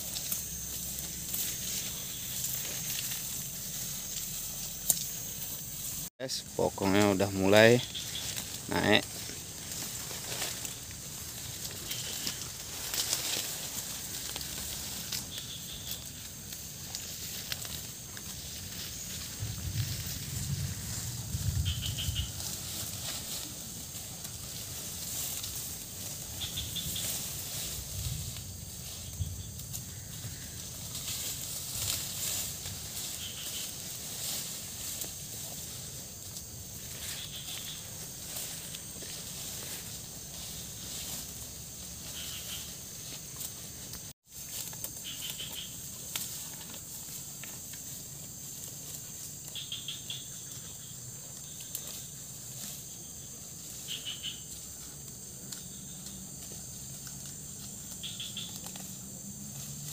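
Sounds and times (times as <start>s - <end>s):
cattle rustling and tearing plants: 0.0s - 6.0s, 6.8s - 49.4s
insects hissing: 0.0s - 59.9s.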